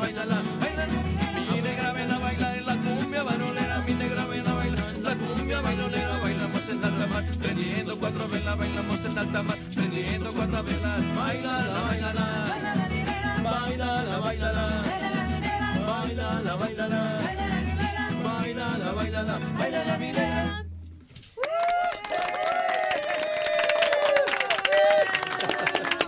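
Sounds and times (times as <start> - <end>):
live cumbia band: 0.0 - 20.6
voices singing along: 0.0 - 20.6
shaker rhythm: 0.0 - 21.4.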